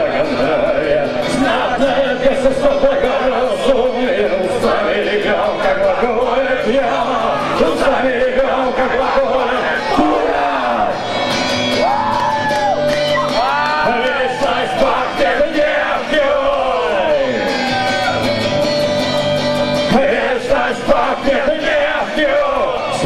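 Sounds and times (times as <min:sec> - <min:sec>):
man singing into a microphone: 0:00.0 - 0:11.0, 0:13.7 - 0:17.7, 0:19.9 - 0:23.0
electric guitar strumming: 0:00.0 - 0:23.0.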